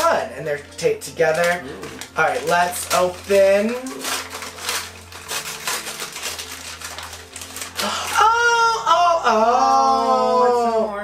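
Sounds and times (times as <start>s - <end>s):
gift wrapping crinkling and tearing: 0.0s - 9.1s.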